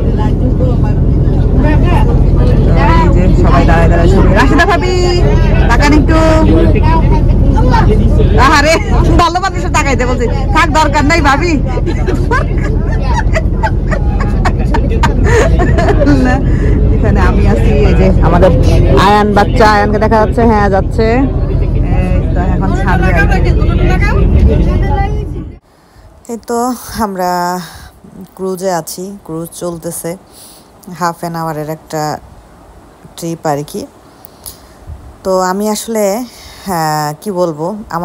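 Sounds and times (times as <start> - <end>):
people talking: 0.0 - 25.6, 26.3 - 32.2, 33.0 - 34.6, 35.2 - 38.0
wind on microphone: 0.0 - 26.2, 34.5 - 35.3
boat engine rumble: 0.0 - 38.0.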